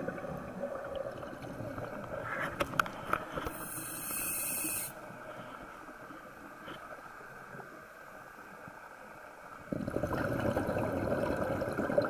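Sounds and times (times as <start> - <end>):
scuba regulator hissing: 3.6 - 5.0.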